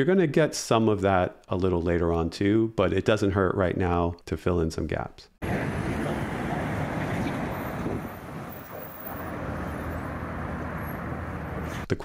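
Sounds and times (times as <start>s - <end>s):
passing cars and vans: 5.4s - 11.9s.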